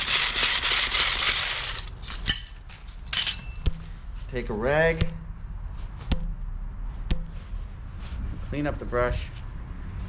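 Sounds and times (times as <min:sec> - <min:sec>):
brush spinner whirring and rattling: 0:00.0 - 0:01.9.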